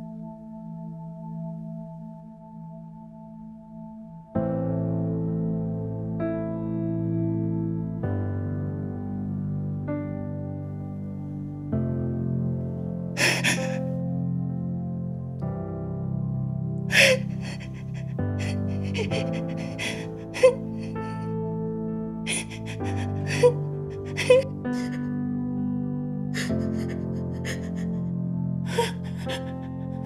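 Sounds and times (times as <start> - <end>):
slow background music chords: 0.0 - 30.0
soft background score: 0.0 - 30.0
woman sobbing: 13.2 - 13.8, 16.9 - 21.3, 22.3 - 25.0, 26.4 - 28.0, 28.7 - 30.0
woman's crying gasps: 13.2 - 13.8, 16.9 - 21.2, 22.3 - 25.0, 26.4 - 28.0, 28.7 - 30.0.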